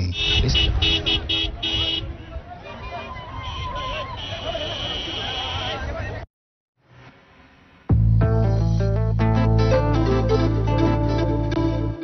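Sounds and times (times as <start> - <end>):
vehicle horn honking: 0.0 - 2.2, 3.4 - 5.8
hubbub of large crowd: 0.7 - 6.2.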